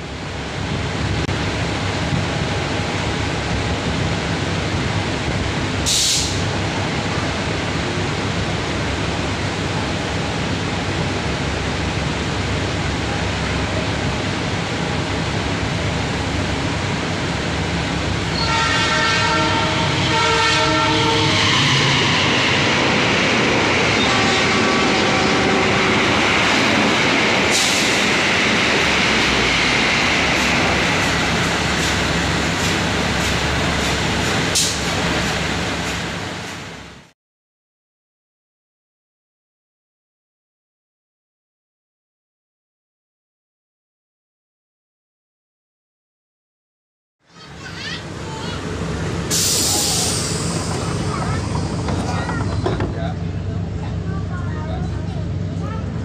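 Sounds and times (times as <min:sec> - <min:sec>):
short high hisses: 0:05.9 - 0:06.5, 0:49.3 - 0:51.0
multi-tone train horn: 0:18.3 - 0:22.2, 0:24.0 - 0:26.1.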